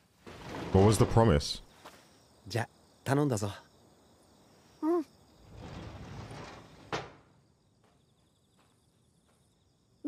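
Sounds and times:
sliding door rolling on track: 5.4 - 7.3.

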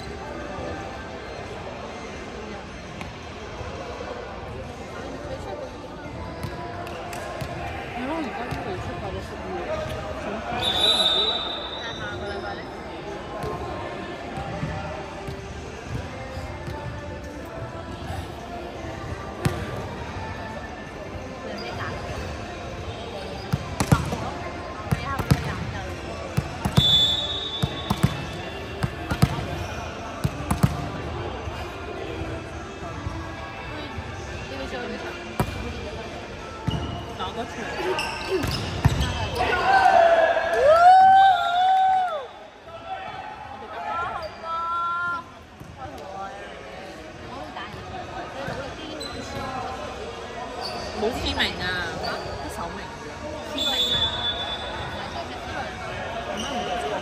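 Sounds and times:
referee's whistle: 10.6 - 12.4, 26.7 - 28.0, 53.6 - 55.0.

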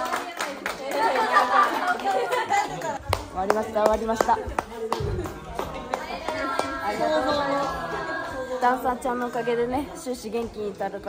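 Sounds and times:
people clapping: 0.0 - 10.6
excited chatter of voices: 0.0 - 11.0.

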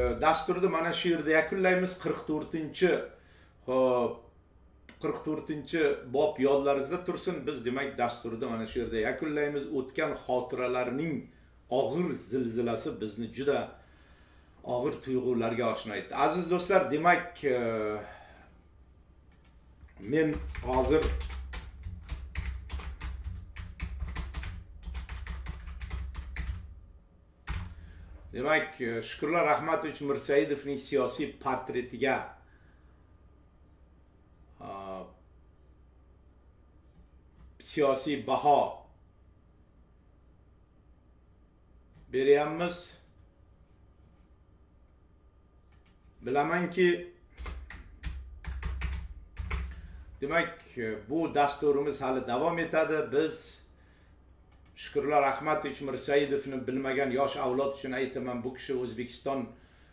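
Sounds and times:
typing on computer keyboard: 20.2 - 26.7, 27.5 - 27.8, 47.4 - 49.8.

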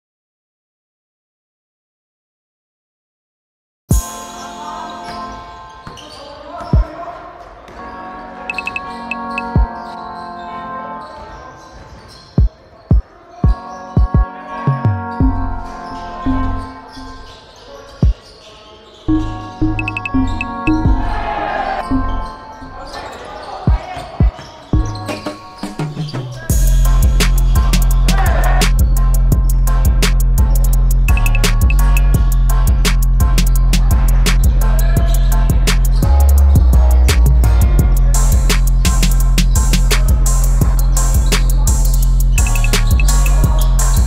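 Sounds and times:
background music with low beat: 3.9 - 4.3, 8.5 - 9.9, 12.4 - 16.8, 19.1 - 21.3, 23.7 - 44.0.

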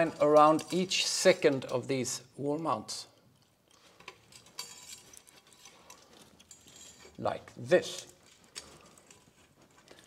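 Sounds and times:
steel wire ticking and clinking: 3.1 - 10.0.

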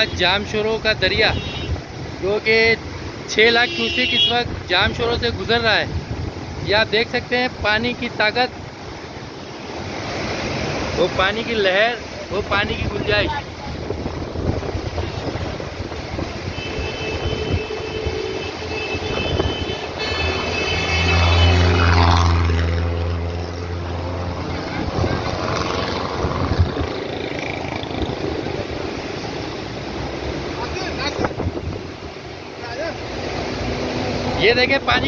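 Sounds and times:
roar of rushing flood water: 0.0 - 35.0
vehicle engine passing: 19.9 - 35.0.

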